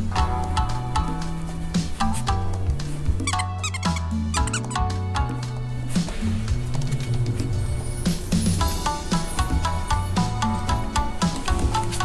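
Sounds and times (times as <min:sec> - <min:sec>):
background music: 0:00.0 - 0:12.0
dog toy squeaking: 0:03.2 - 0:05.0.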